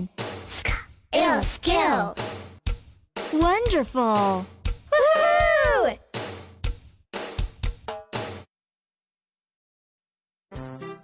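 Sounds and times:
drum beats: 0:00.0 - 0:08.5
children's song backing music: 0:00.2 - 0:02.6.

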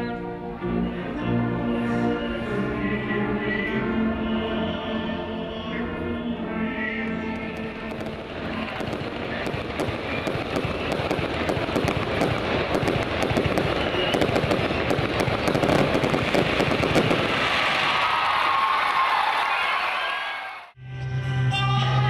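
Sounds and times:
fireworks crackling pops: 0:07.5 - 0:18.9.

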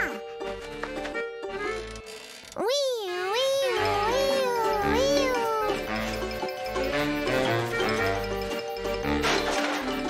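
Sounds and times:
background music: 0:00.0 - 0:10.0
cartoon wolf howling: 0:03.4 - 0:05.8.

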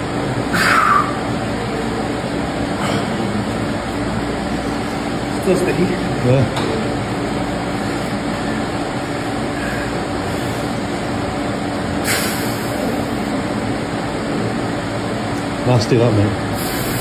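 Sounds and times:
ventilation fans whirring: 0:00.0 - 0:17.0.

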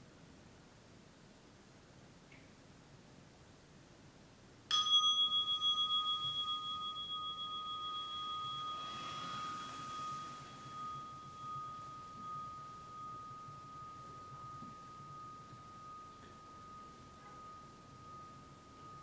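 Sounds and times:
meditation bell ringing: 0:04.7 - 0:19.0.

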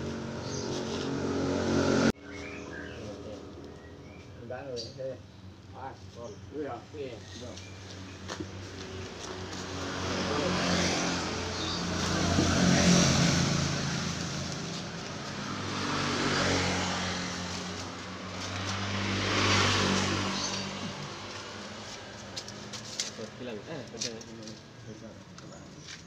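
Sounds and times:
vehicles passing on road: 0:00.0 - 0:26.0.

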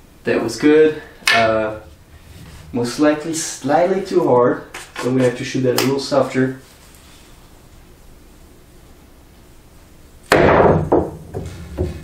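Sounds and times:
cue striking ball: 0:10.3 - 0:12.0.

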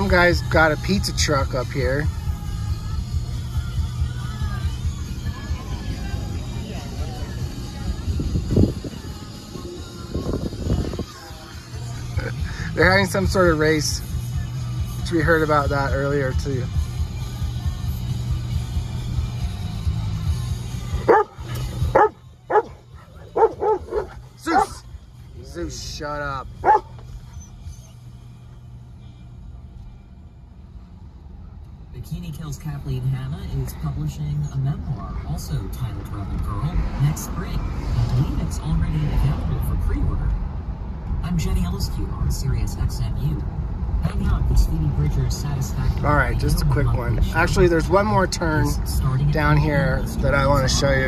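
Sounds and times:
engine and road noise hum: 0:00.0 - 0:51.0
music on car radio: 0:00.0 - 0:51.0.

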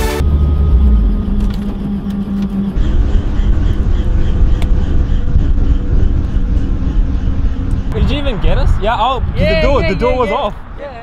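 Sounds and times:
steady hum: 0:00.2 - 0:08.3.

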